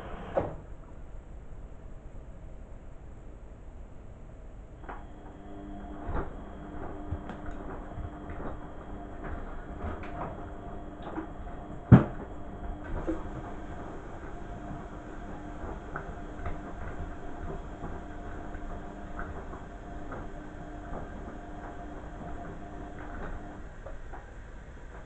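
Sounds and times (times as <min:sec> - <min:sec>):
washing machine motor hum: 0:04.5 - 0:25.0
laundry knocking in drum: 0:11.2 - 0:13.7.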